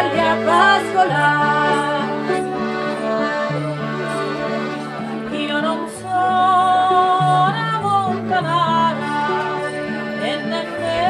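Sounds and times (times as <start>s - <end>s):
acoustic guitar accompaniment: 0.0s - 11.0s
piano accordion folk melody: 0.0s - 11.0s.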